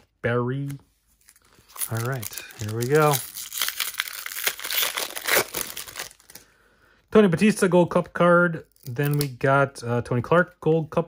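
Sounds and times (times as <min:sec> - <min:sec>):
foil wrapper tearing and crinkling: 0:01.3 - 0:06.4.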